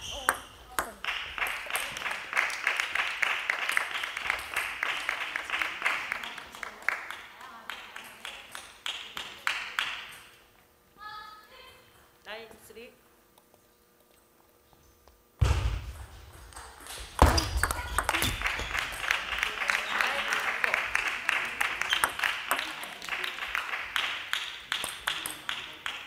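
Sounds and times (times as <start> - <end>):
voices in a hall: 0.0 - 13.7, 17.2 - 26.0.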